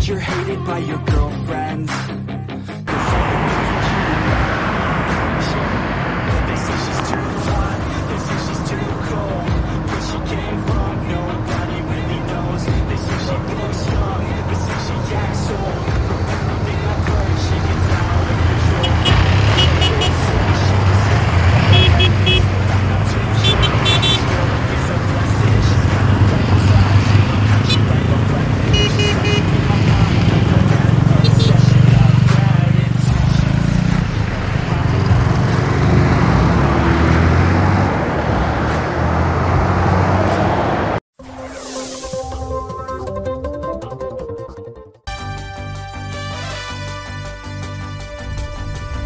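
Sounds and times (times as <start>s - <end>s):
passing road traffic: 2.6s - 41.0s
motorcycle engines running: 2.9s - 41.0s
short high horn beeps: 18.8s - 20.2s, 21.7s - 22.5s, 23.4s - 24.3s, 28.7s - 29.5s, 31.2s - 31.6s.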